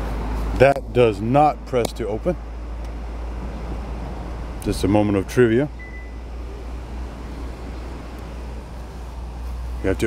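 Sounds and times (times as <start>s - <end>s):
constant low rumble: 0.0s - 10.0s.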